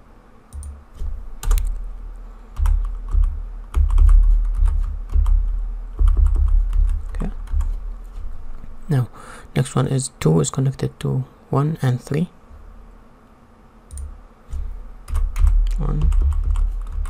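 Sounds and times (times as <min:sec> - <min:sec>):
typing on computer keyboard: 0:00.5 - 0:01.8, 0:02.6 - 0:07.8, 0:15.1 - 0:17.0.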